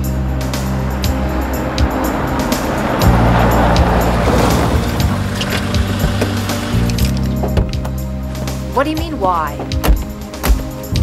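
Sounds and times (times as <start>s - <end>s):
car engine running: 0.0s - 11.0s
tyres crunching over gravel: 0.2s - 8.7s.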